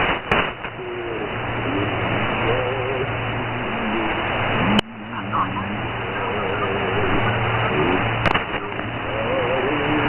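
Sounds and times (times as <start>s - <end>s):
faint wavering radio tones: 0.0s - 10.0s
low hum: 0.0s - 10.0s
radio static hiss: 0.0s - 10.0s.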